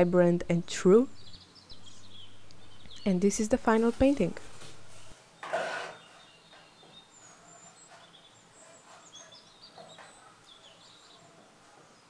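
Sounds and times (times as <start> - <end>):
birds chirping and twittering: 0.0 - 12.0.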